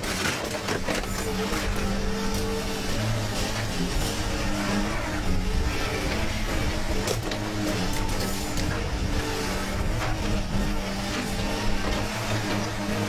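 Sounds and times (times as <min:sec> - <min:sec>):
excavator engine and hydraulics: 0:00.0 - 0:13.0.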